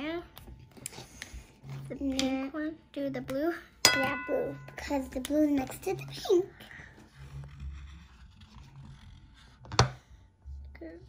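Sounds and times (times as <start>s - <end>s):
marker scratching on glass: 7.0s - 10.2s.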